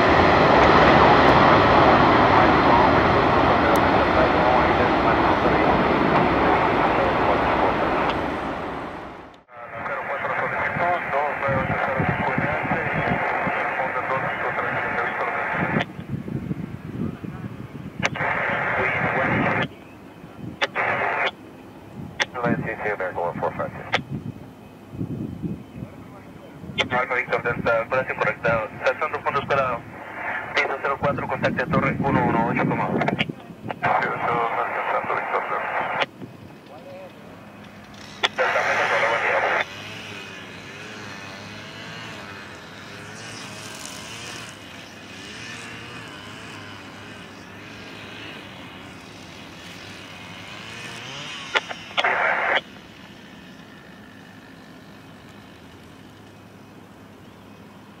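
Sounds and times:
jet engines running: 0:00.0 - 0:58.0
radio chatter: 0:09.5 - 0:15.9, 0:18.0 - 0:19.7, 0:20.5 - 0:21.4, 0:22.2 - 0:24.1, 0:26.0 - 0:36.1, 0:38.0 - 0:39.8, 0:51.5 - 0:52.8.

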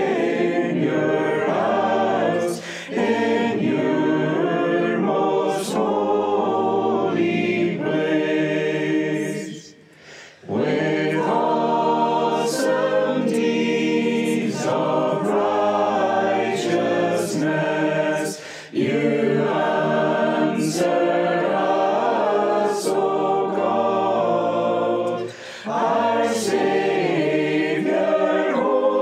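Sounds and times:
group singing psalm in unison: 0:00.0 - 0:29.0.

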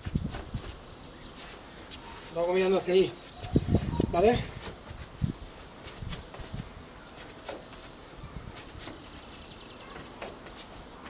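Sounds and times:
faint outdoor background: 0:00.0 - 0:11.0
sneaker footsteps on tiles: 0:00.0 - 0:11.0.

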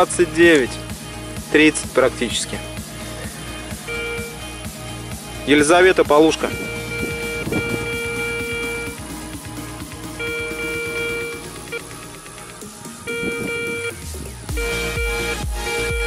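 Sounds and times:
metal detector buzzy tone: 0:03.9 - 0:04.3, 0:06.4 - 0:09.0, 0:10.2 - 0:11.8, 0:13.1 - 0:16.0
guitar music: 0:06.2 - 0:12.2, 0:12.8 - 0:16.0.

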